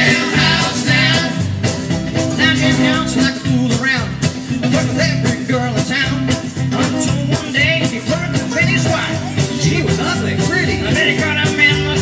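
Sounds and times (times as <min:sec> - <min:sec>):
jug band playing: 0:00.0 - 0:12.0.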